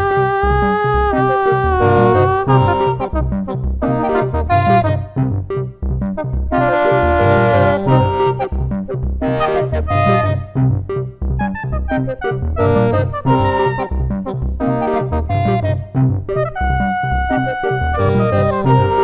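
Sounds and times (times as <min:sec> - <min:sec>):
brass-like synth notes: 0:00.0 - 0:19.0
repeating synth bass pattern: 0:00.0 - 0:19.0
sustained synth chords: 0:00.0 - 0:19.0.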